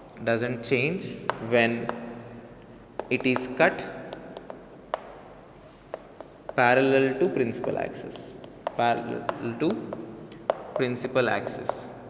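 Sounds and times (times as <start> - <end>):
chalk writing on chalkboard: 1.2 - 12.0.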